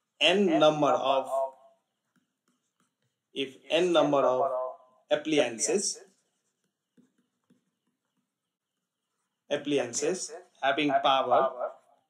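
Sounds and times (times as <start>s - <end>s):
stylus tapping tablet screen: 1.8s - 3.4s, 6.2s - 9.3s.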